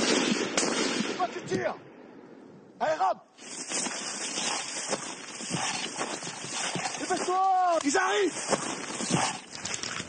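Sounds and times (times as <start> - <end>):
rustling and scraping on leafy ground: 3.4 - 10.0.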